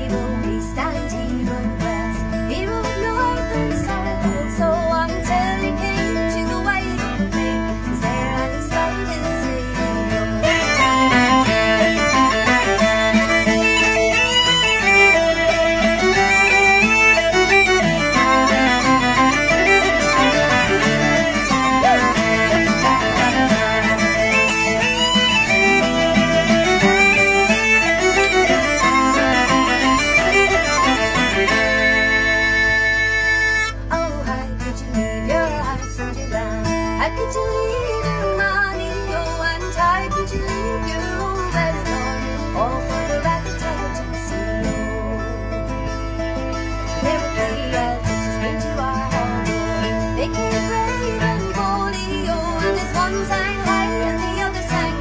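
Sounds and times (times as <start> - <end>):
fiddle playing melody: 0.0 - 34.3, 35.4 - 55.0
acoustic guitars strumming chords: 0.0 - 55.0.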